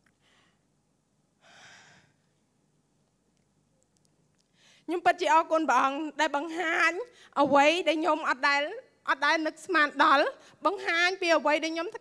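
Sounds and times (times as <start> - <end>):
woman breathing into microphone: 1.4 - 2.2.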